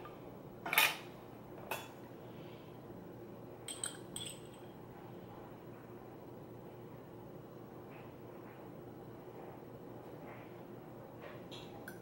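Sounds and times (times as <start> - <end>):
metal fork clinking glass jar: 3.7 - 4.6.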